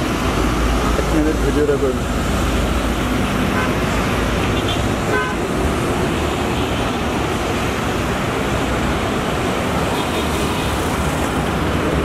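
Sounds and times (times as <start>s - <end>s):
bus diesel engine rumble: 0.0s - 12.0s
road traffic noise: 0.0s - 12.0s.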